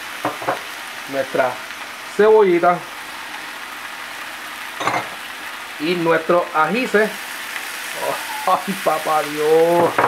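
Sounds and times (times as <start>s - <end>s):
food sizzling in a frying pan: 0.0s - 10.0s.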